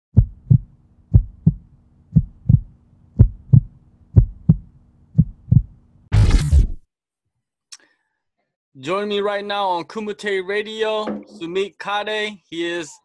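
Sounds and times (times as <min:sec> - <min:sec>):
heartbeat thumps: 0:00.1 - 0:05.8.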